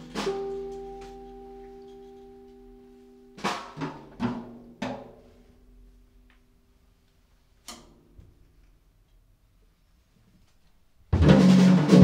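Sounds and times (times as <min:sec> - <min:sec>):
drum kit hits ringing out: 0:00.0 - 0:01.2, 0:11.2 - 0:12.0.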